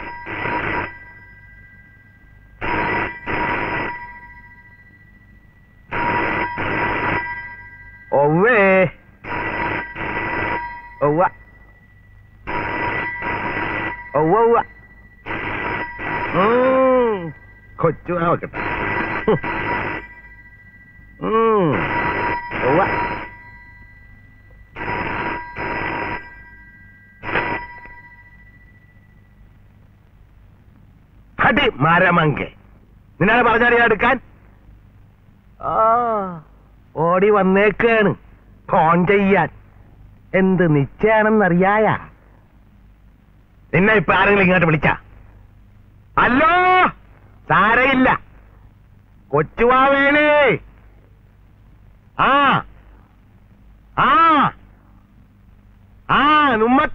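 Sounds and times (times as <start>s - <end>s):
telephone bell ringing: 0.0s - 29.4s.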